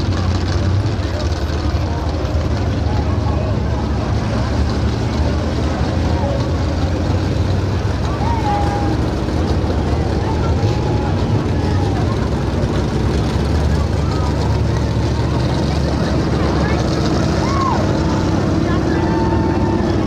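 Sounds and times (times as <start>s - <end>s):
stock car engines rumbling: 0.0s - 20.0s.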